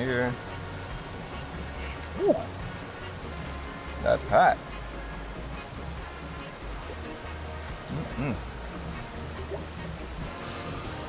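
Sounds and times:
quiet background music: 0.0 - 11.0
man saying ooh: 7.9 - 8.4.

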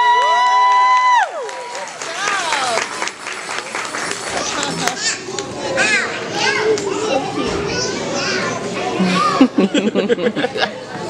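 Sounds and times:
young children chattering: 3.7 - 11.0.

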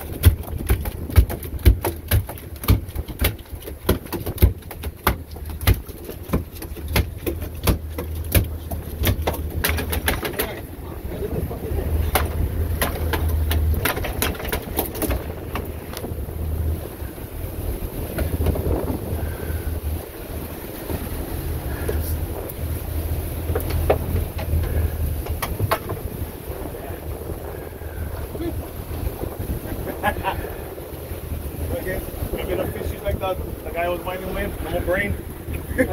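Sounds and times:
sharp clicks and knocks: 0.0 - 10.6, 12.0 - 16.1, 23.5 - 26.1
boat engine running: 0.0 - 35.9
sea: 0.0 - 35.9
wind buffeting microphone: 0.0 - 35.9.

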